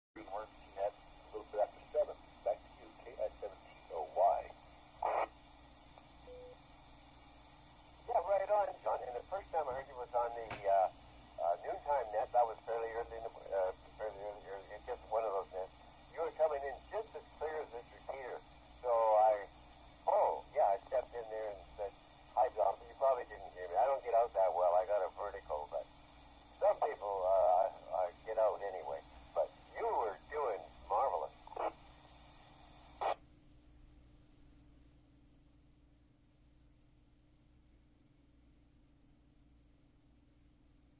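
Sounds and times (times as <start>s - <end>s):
speech over two-way radio: 0.2s - 5.3s, 8.0s - 25.9s, 26.6s - 31.8s
faint radio tone: 0.2s - 33.2s
radio hiss: 0.2s - 33.2s.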